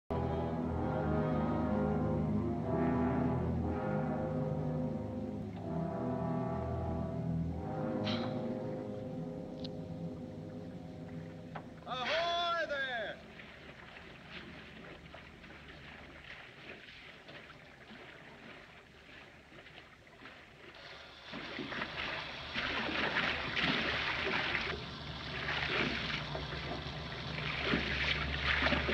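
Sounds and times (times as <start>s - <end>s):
deep sustained horn tones: 0.1s - 11.9s
water sloshing and splashing: 6.9s - 28.9s.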